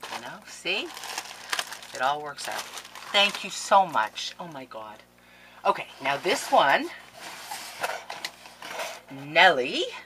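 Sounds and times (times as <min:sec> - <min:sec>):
paper mailer crinkling: 0:00.0 - 0:04.1.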